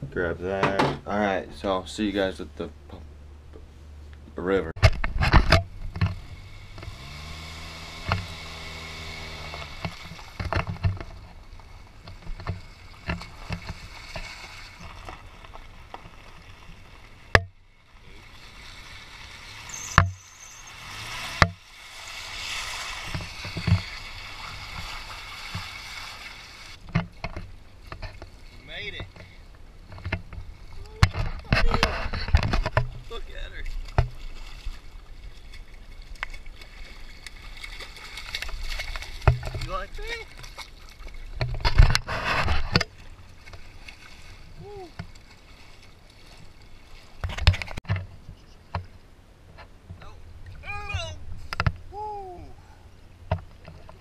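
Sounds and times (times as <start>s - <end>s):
car engine running: 5.0s - 11.4s
water splashing around tyres: 5.0s - 48.0s.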